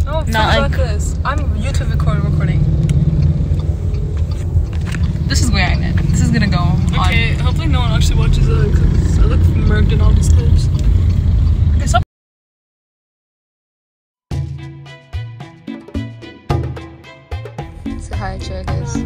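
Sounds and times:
people talking: 0:00.0 - 0:02.7, 0:05.2 - 0:10.9, 0:11.8 - 0:12.0, 0:18.0 - 0:19.0
car interior rumble: 0:00.0 - 0:12.0.

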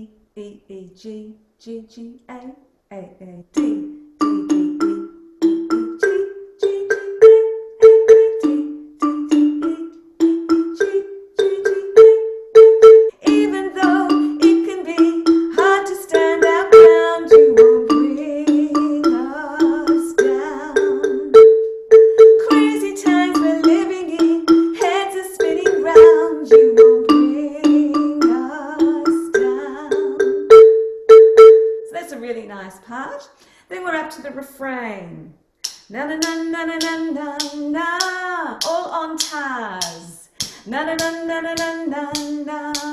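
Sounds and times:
xylophone struck with soft mallets: 0:03.6 - 0:32.0
person singing: 0:05.7 - 0:12.3, 0:13.1 - 0:21.4, 0:22.1 - 0:30.4, 0:36.0 - 0:42.9.

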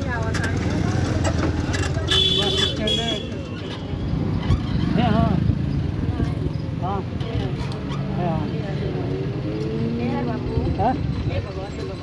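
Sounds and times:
rumble of vehicles: 0:00.0 - 0:12.0
vehicle horn beep: 0:02.1 - 0:03.4.

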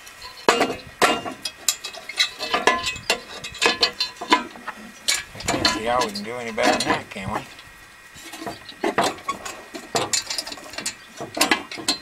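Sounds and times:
clicks and scrapes on metal: 0:00.2 - 0:07.0, 0:08.2 - 0:12.0
sharp metal clanks: 0:00.3 - 0:07.0.

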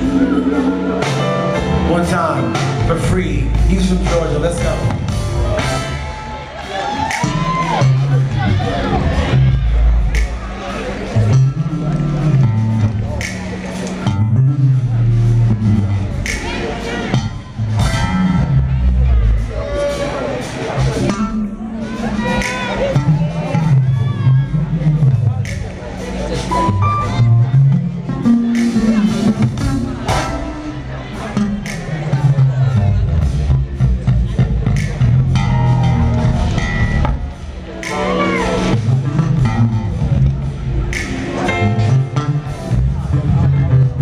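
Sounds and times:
electric bass line: 0:00.0 - 0:19.9, 0:20.7 - 0:44.0
live band playing: 0:00.0 - 0:44.0.

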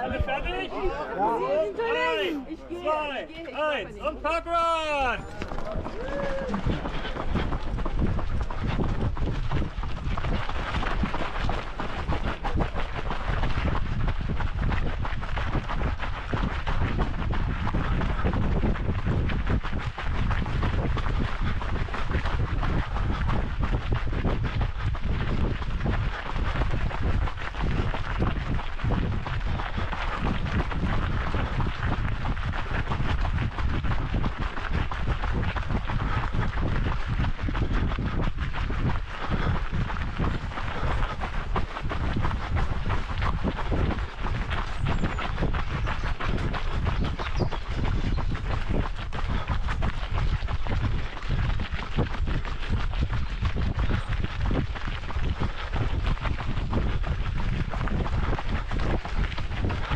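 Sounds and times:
wind rumbling on microphone: 0:00.0 - 0:02.2, 0:05.2 - 0:59.9
footsteps running on dirt path: 0:00.0 - 0:59.9.

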